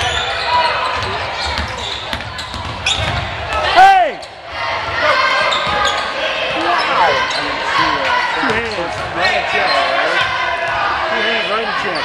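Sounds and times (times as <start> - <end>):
spectators' voices echoing: 0.0 - 12.0.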